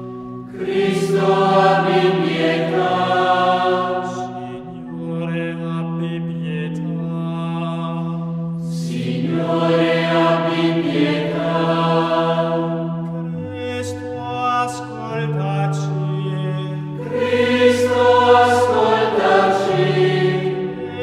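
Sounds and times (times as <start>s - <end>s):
choir singing long held notes: 0.0s - 13.9s, 15.7s - 21.0s.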